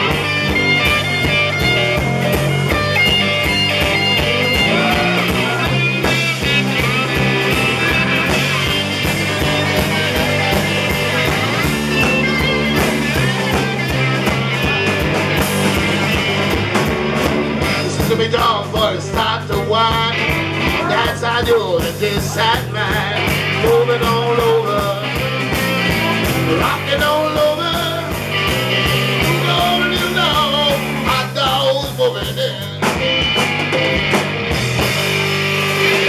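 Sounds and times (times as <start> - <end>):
bass guitar: 0.0 - 36.0
electric guitar lead: 0.0 - 36.0
steady drum beat: 0.0 - 36.0.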